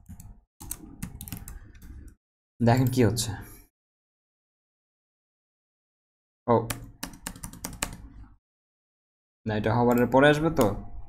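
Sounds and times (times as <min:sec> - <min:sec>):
computer keyboard clicks: 0:00.0 - 0:02.2, 0:06.7 - 0:08.0.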